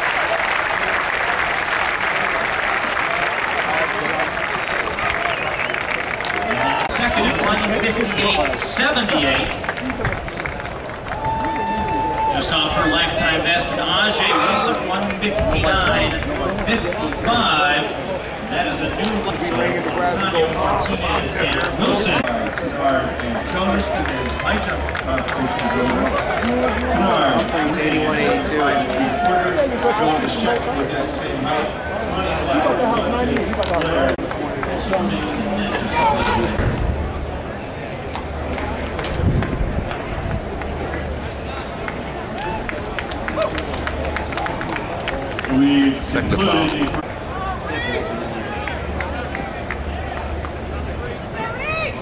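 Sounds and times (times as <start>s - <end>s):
stadium crowd: 0.0s - 52.0s
distant echoing public address voice: 12.4s - 18.4s
announcer over loudspeakers: 14.0s - 15.0s.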